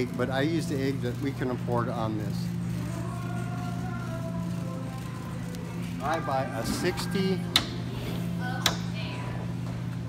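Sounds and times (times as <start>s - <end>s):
refrigerated case humming: 0.0s - 10.0s.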